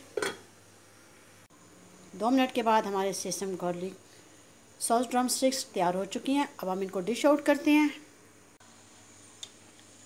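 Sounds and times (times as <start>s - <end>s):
faint room hiss: 0.0s - 10.0s
pan lid clink: 0.1s - 0.5s.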